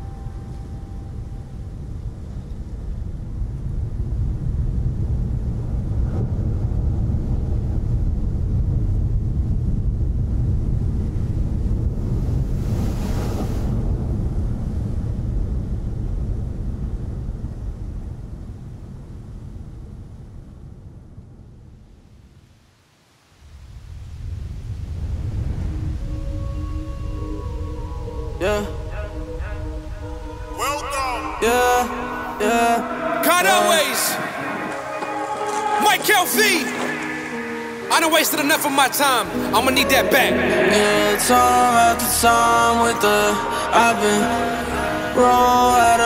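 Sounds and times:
ocean surf breaking: 11.0 - 15.6, 23.4 - 46.0.

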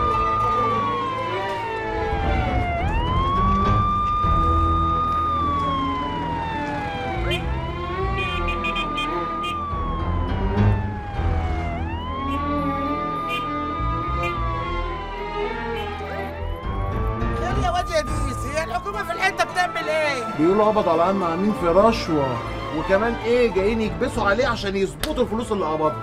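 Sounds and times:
police siren wailing: 0.0 - 26.0.

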